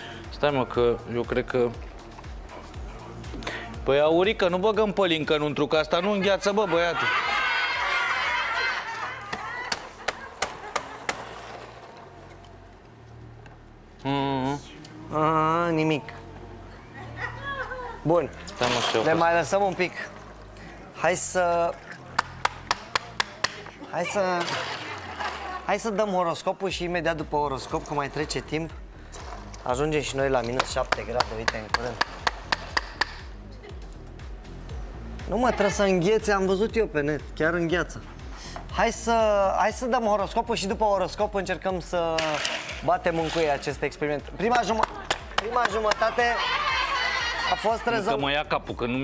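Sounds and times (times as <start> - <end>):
music with low bass beat: 27.2 - 41.9.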